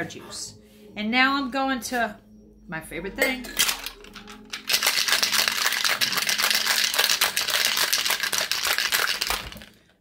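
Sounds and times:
ice rattling in cocktail shaker: 3.6s - 9.9s.

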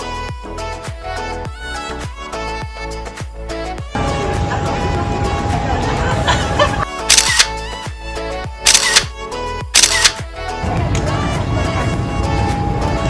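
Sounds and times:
pop music: 0.0s - 13.0s
camera shutter clicks: 7.0s - 7.6s, 8.6s - 9.1s, 9.8s - 10.2s.

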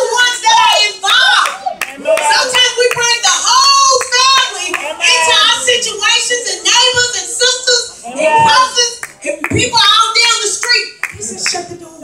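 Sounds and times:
congregation calling out: 0.0s - 12.0s
hand claps: 10.6s - 11.7s.

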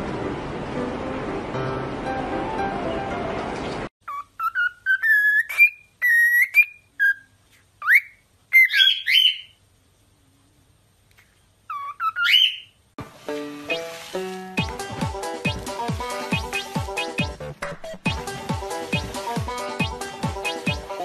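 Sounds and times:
music: 0.8s - 3.7s, 13.0s - 21.0s
cockatiel whistling: 4.1s - 9.6s, 11.7s - 12.7s.

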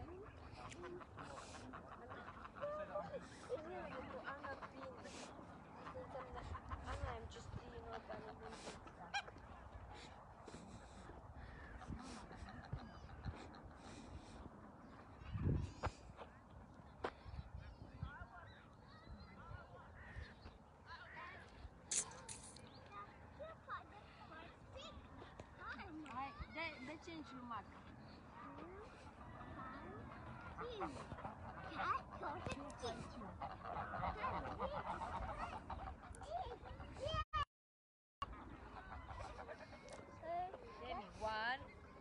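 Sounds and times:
geese honking: 0.0s - 15.0s, 26.8s - 36.9s.

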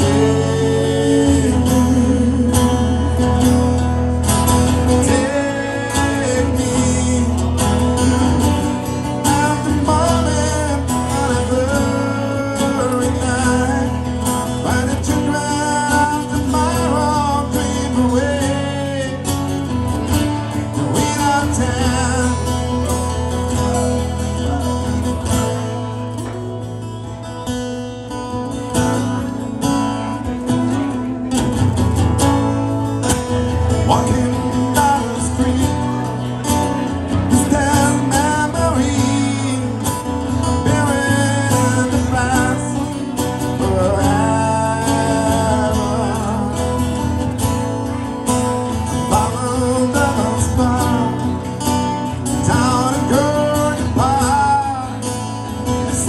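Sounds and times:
man singing into a microphone: 0.0s - 26.4s, 33.0s - 56.0s
acoustic guitar strumming: 0.0s - 56.0s.

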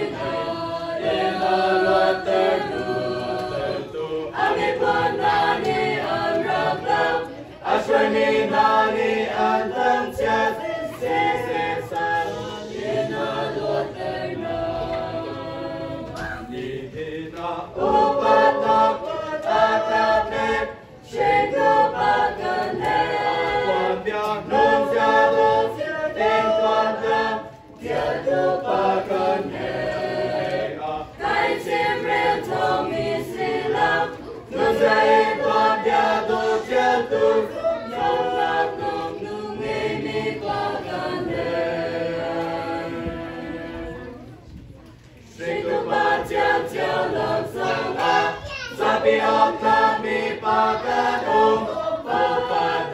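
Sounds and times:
choir singing a hymn: 0.0s - 52.9s.

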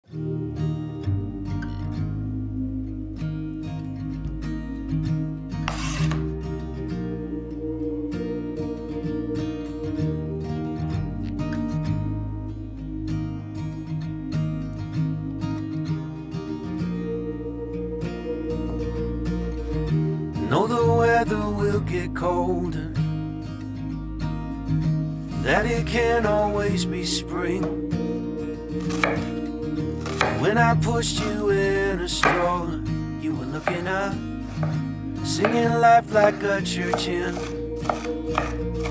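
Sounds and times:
plucked acoustic guitar music: 0.1s - 38.9s
knife cutting onion on board: 5.6s - 6.3s, 28.8s - 30.5s, 31.2s - 31.4s, 32.2s - 32.6s, 33.6s - 35.7s, 36.8s - 38.9s
brief scraping noise: 5.7s - 6.2s.

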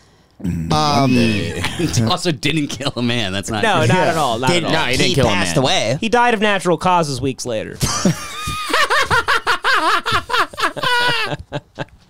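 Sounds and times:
men laughing hard: 1.0s - 2.1s, 7.8s - 12.0s
rhythmic ha-ha-ha laugh: 7.8s - 12.0s.

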